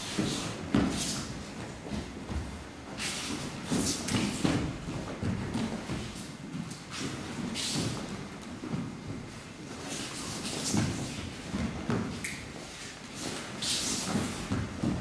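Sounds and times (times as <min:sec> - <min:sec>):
bare feet sliding on mats: 0:00.0 - 0:15.0.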